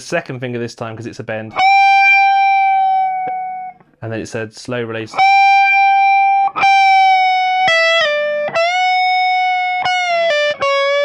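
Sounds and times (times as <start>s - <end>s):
guitar pick click: 1.5s - 4.0s.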